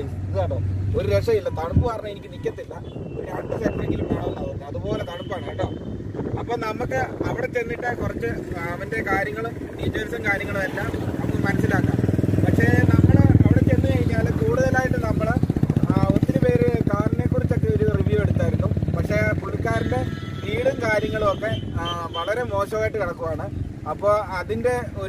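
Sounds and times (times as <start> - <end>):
man talking: 0.0 - 25.0
vehicle engine rumble: 0.0 - 25.0.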